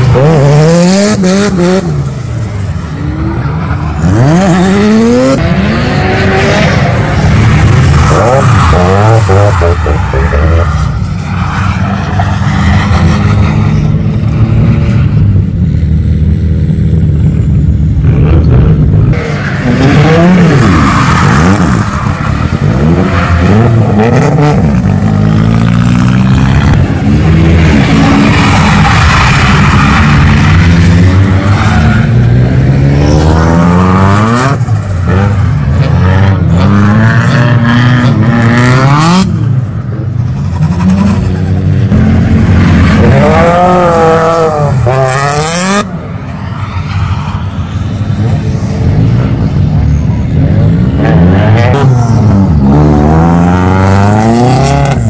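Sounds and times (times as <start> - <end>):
tyres skidding: 0.0 - 15.2, 19.1 - 55.0
car engines revving: 0.0 - 55.0.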